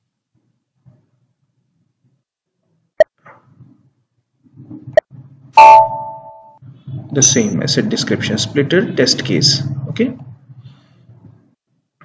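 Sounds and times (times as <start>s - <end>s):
two-tone electronic chime: 5.6s - 6.6s.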